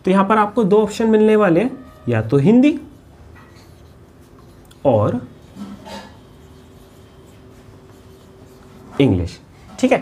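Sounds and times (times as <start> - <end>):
low steady hum: 0.0 - 9.6
marker writing on whiteboard: 0.8 - 9.9.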